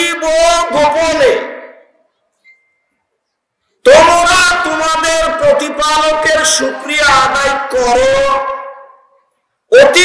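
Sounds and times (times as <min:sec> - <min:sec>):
man preaching through loudspeaker: 0:00.0 - 0:02.0, 0:03.8 - 0:10.0.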